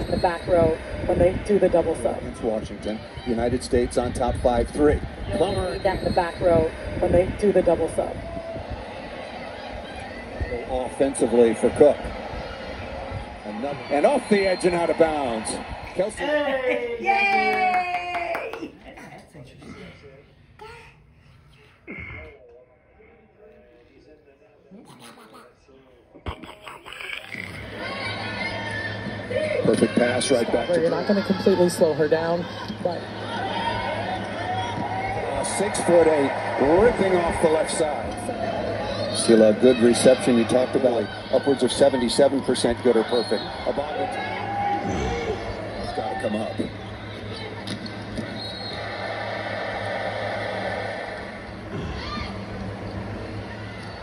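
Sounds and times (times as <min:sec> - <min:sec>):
arena crowd noise: 0:00.0 - 0:20.6, 0:21.2 - 0:54.0
television voices: 0:00.0 - 0:54.0
steady low hum: 0:18.8 - 0:54.0.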